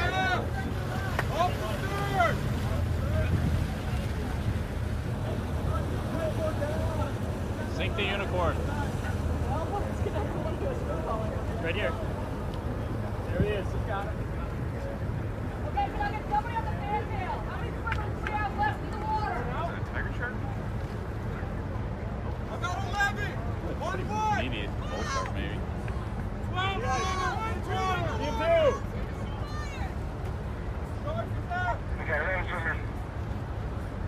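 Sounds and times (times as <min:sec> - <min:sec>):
voices calling out: 0:00.0 - 0:21.7
boat engines rumbling: 0:00.0 - 0:34.0.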